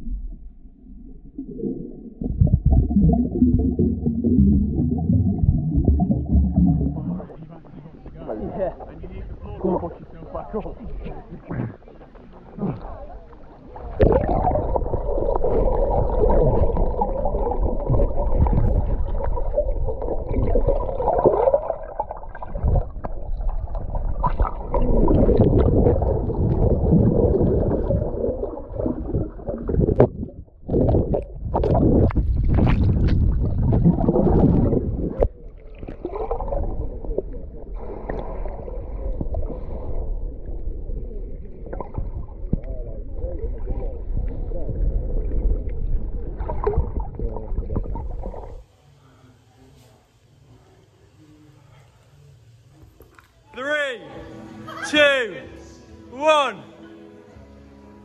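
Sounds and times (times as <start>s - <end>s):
water churning underwater: 0.0s - 48.7s.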